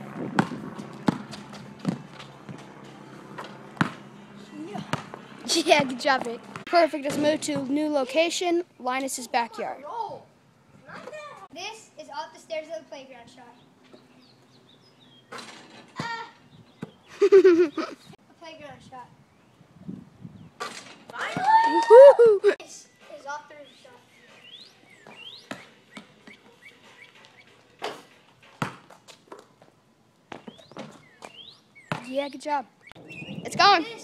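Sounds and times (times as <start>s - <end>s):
basketball striking hoop: 0.4s - 2.6s, 3.4s - 4.0s, 28.6s - 28.9s
birds chirping: 12.0s - 20.6s, 22.6s - 27.8s, 30.3s - 34.0s.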